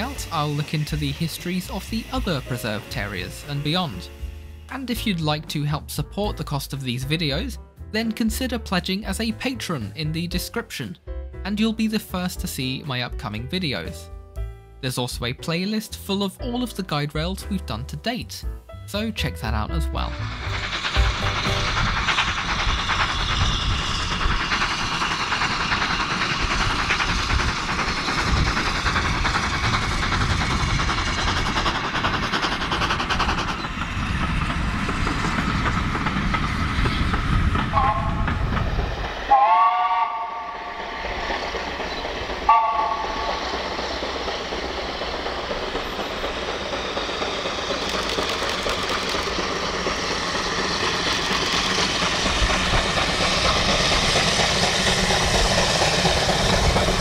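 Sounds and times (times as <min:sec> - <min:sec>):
steam engine running: 0:00.0 - 0:06.3, 0:19.0 - 0:57.0
steam chime whistle blasts: 0:39.3 - 0:40.8, 0:42.5 - 0:43.4.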